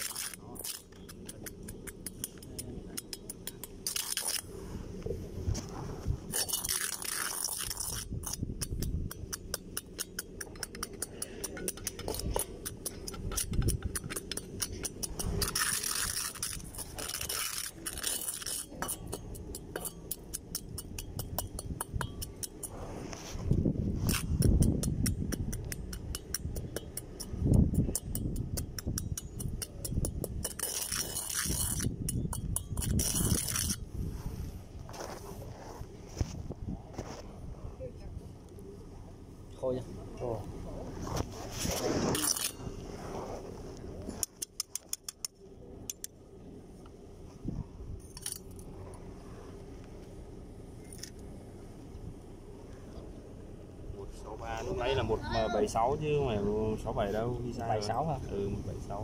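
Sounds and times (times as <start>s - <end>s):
steel rod scraping steel bowl: 0.0s - 5.1s, 6.2s - 33.9s, 41.1s - 46.1s.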